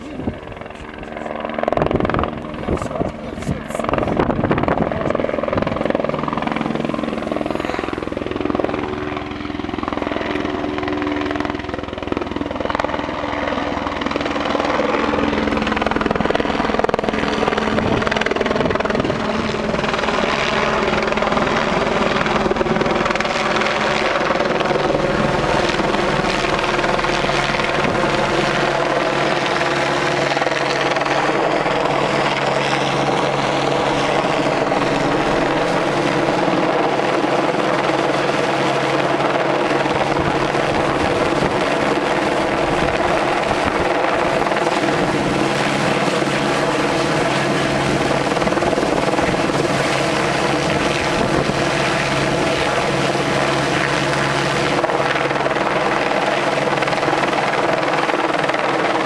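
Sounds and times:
helicopter hovering: 0.0 - 59.0.

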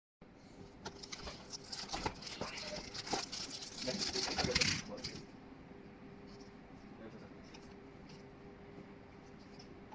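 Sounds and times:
plastic bag crinkling: 1.0 - 5.2.

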